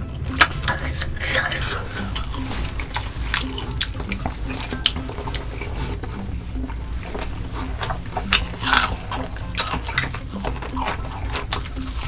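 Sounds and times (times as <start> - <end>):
wet chewing and lip-smacking: 0.0 - 12.0.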